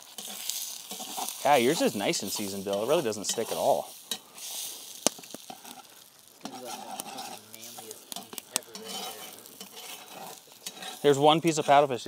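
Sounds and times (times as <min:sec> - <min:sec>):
eggs and bacon sizzling: 0:00.0 - 0:12.0
metal spatula scraping pan: 0:00.0 - 0:12.0.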